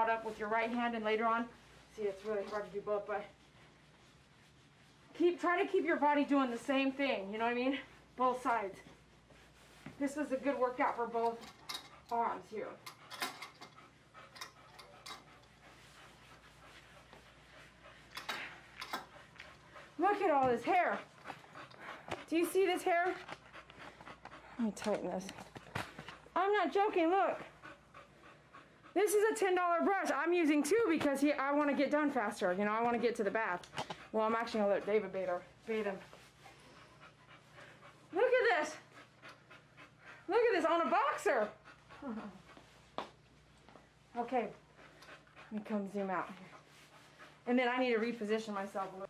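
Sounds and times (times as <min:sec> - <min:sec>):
dog panting: 0:00.0 - 0:49.0.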